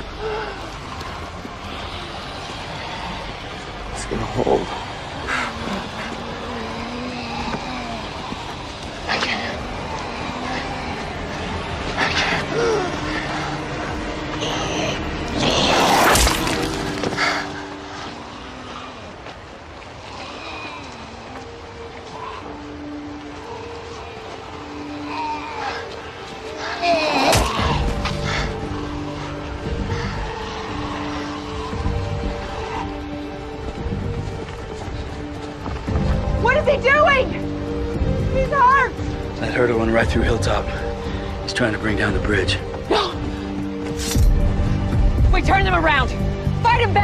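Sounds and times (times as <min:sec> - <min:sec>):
steady rushing rumble: 0:00.0 - 0:26.8, 0:27.4 - 0:47.0.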